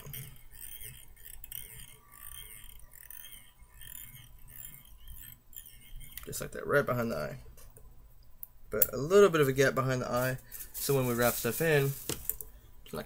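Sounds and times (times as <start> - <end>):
thread rasping on hook: 0.0 - 8.6.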